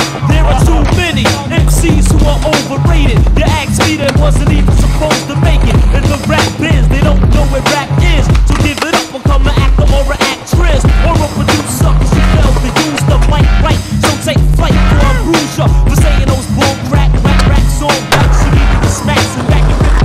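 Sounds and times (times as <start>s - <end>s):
music with heavy bass beat: 0.0s - 20.0s
skateboard knocking and grinding: 0.0s - 20.0s
skateboard wheels rolling on concrete: 0.0s - 20.0s.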